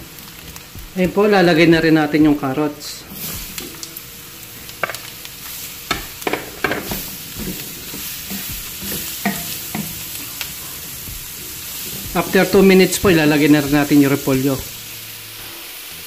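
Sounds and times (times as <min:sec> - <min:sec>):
vegetables sizzling in hot oil: 0:00.0 - 0:16.0
wooden spoon scraping a pan: 0:05.9 - 0:13.6.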